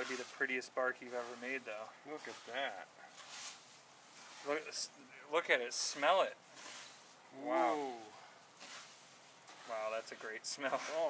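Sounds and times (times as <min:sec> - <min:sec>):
man speaking: 0:00.0 - 0:03.0, 0:04.4 - 0:06.4, 0:07.3 - 0:08.2, 0:09.6 - 0:11.0
faint rustling of cereal flakes: 0:00.0 - 0:05.0, 0:05.6 - 0:11.0.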